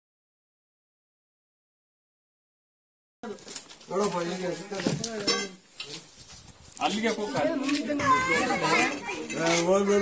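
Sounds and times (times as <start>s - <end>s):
people talking and calling out: 3.2s - 10.0s.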